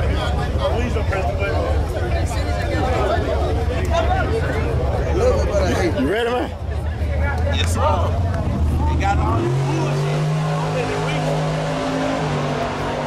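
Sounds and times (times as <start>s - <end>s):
crowd voices talking: 0.0s - 13.0s
racing car engine rumbling: 0.0s - 13.0s.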